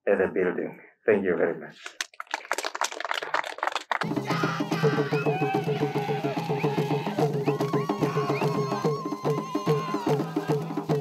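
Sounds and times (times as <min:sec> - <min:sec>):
audience applause: 0:01.9 - 0:10.7.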